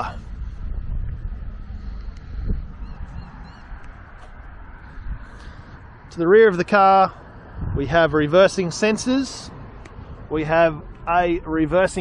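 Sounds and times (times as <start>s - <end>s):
low rumble of wind: 0.0s - 12.0s.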